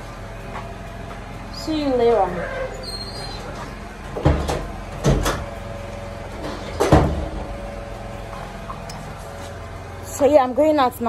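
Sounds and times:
door being shut: 4.2 - 5.5, 6.4 - 7.5.

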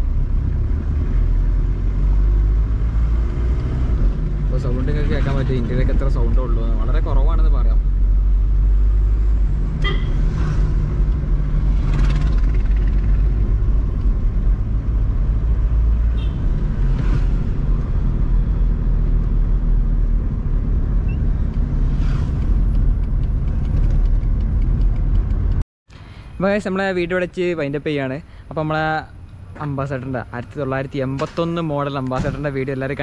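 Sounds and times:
car engine and road rumble: 0.0 - 33.0.

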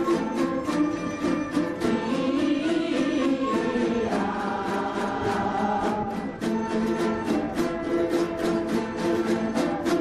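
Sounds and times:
plucked lutes ensemble: 0.0 - 10.0
chorus singing in unison: 1.2 - 10.0.

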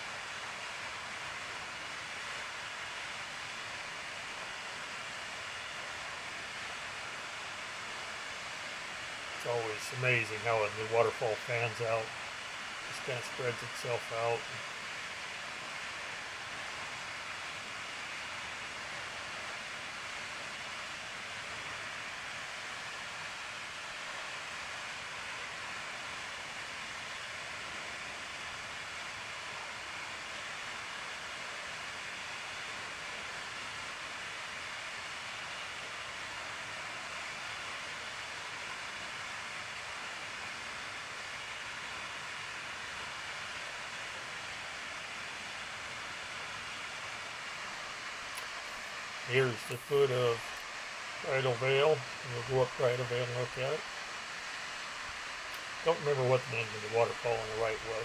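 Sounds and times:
waterfall rushing: 0.0 - 58.0.

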